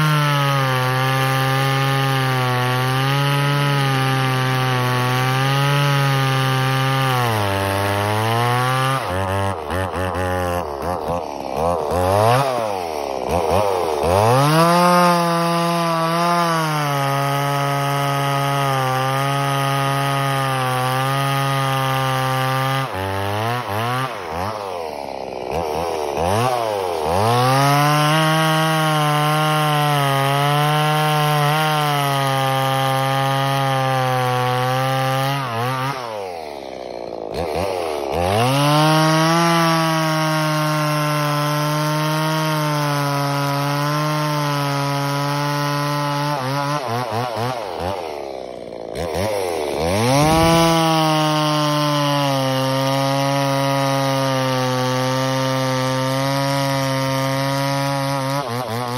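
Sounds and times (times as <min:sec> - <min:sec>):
chainsaw cutting log: 0:00.0 - 0:58.9.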